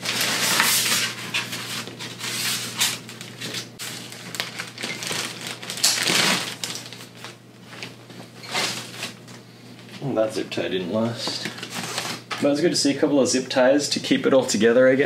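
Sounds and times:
cardboard and styrofoam scraping: 0.0s - 6.8s, 7.8s - 9.2s, 11.6s - 12.3s
plastic wrap rustling: 0.0s - 10.2s, 11.0s - 12.5s.

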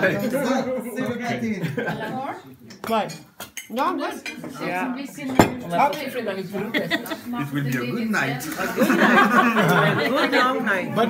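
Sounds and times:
background chatter: 0.0s - 11.0s
cutlery and plates clinking: 2.6s - 6.2s.

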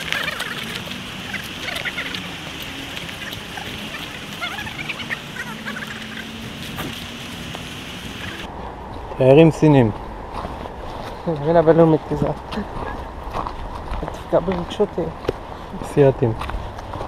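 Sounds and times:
woodland background noise: 0.0s - 17.0s.

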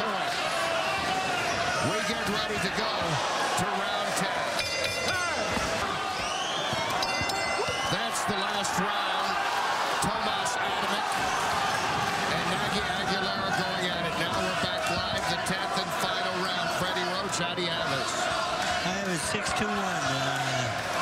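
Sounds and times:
crowd voices and shouts: 0.0s - 21.0s
ring bell clanging: 4.5s - 5.8s, 6.9s - 8.2s.

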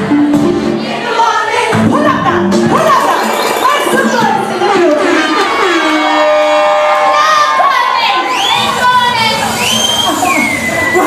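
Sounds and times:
crowd screaming and cheering: 2.9s - 11.0s.

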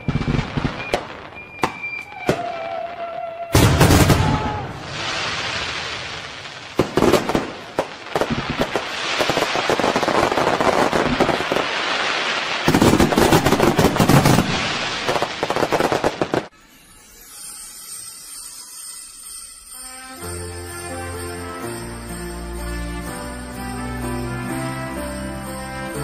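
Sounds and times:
fireworks bangs: 0.0s - 16.5s
fireworks crackling and popping: 0.0s - 20.9s.

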